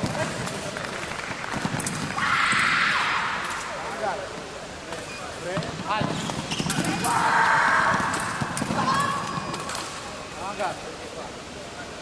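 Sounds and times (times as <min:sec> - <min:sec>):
fencing blades clashing: 0:06.6 - 0:07.3, 0:08.0 - 0:10.2.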